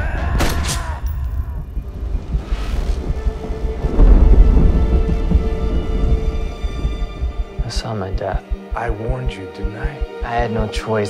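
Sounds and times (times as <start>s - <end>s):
low rumble: 1.1s - 9.0s
deep boom: 1.4s - 8.5s.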